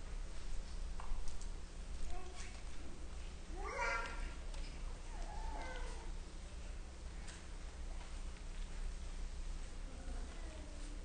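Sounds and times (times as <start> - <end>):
low electrical hum: 0.0 - 11.0
faint whimper: 5.1 - 6.1.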